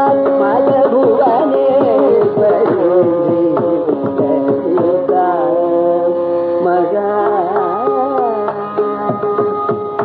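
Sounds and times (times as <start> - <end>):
drum strokes: 7.1 - 10.0.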